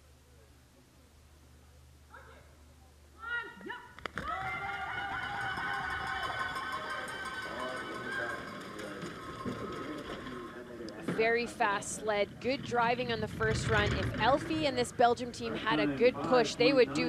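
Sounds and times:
people shouting and cheering: 3.2 - 10.5.

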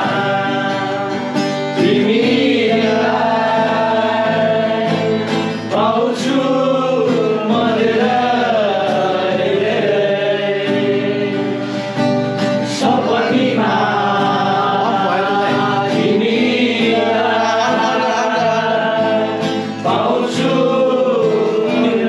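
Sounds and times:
acoustic guitar: 0.0 - 22.0
men singing together: 0.0 - 22.0.

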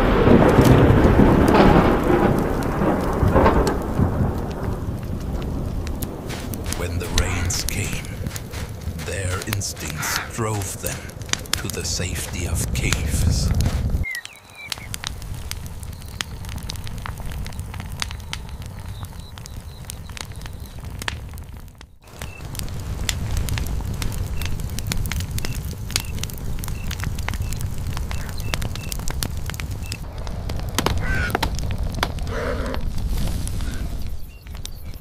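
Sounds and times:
low rumble of flames: 0.0 - 35.0
sharp pops of fire: 0.0 - 35.0
wood fire crackling: 0.0 - 35.0.

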